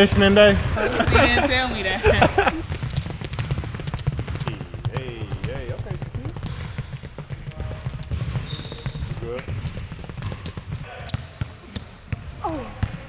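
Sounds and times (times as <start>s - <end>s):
basketball bouncing on hardwood: 0.1s - 13.0s
high squeak: 6.6s - 7.8s, 8.4s - 9.0s.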